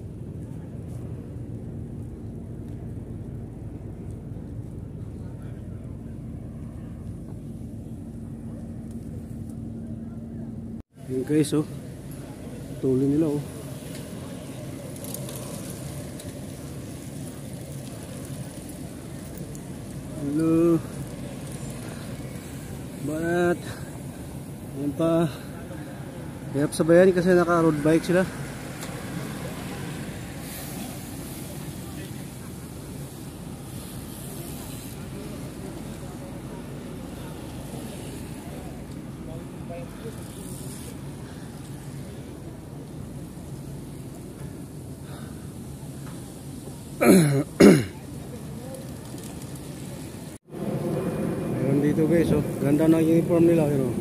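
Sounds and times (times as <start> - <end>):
distant voices: 0.0 - 47.0
bicycles rolling on asphalt: 0.0 - 54.0
low outdoor rumble: 0.0 - 54.0.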